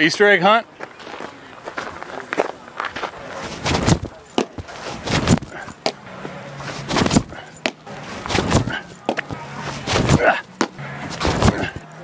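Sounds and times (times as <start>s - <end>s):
faint background voices: 0.7s - 12.0s
footsteps crunching on dirt: 0.7s - 12.0s.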